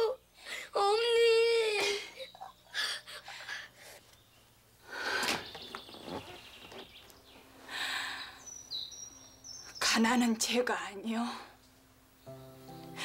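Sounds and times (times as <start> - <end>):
boy sobbing: 0.0 - 4.0
bird chirp: 4.0 - 10.4.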